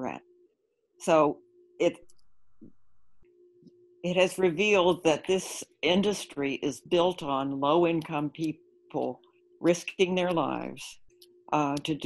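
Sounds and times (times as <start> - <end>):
faint steady electronic tone: 0.0 - 12.0.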